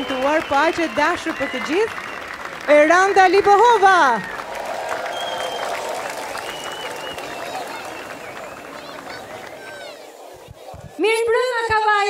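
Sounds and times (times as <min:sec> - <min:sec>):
audience applauding: 0:00.0 - 0:10.3
faint crowd voices: 0:00.0 - 0:12.0.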